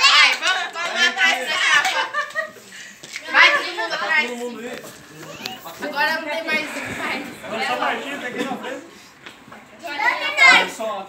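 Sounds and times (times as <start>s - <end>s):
party crowd voices: 4.8s - 9.8s.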